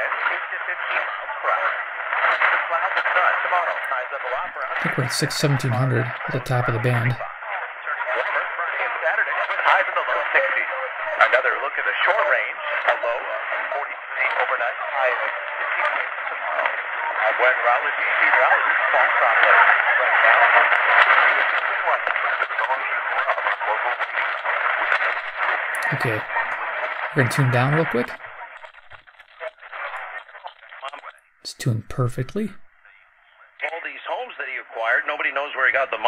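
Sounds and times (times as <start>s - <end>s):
voice on a small radio: 0.0s - 28.6s, 29.4s - 36.0s.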